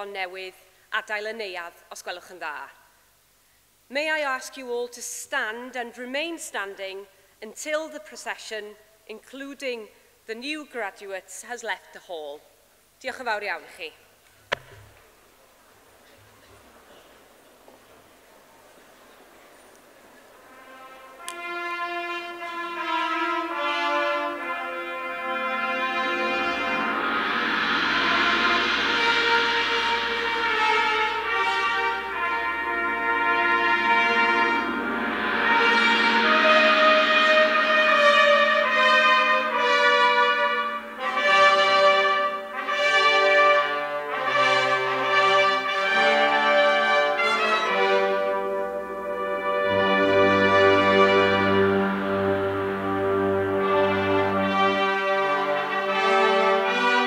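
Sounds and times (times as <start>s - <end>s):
brass music with sustained chords: 18.8s - 57.0s.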